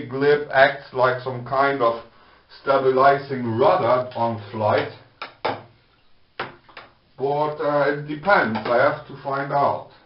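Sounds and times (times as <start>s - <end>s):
wooden lure knocking: 6.4s - 7.0s.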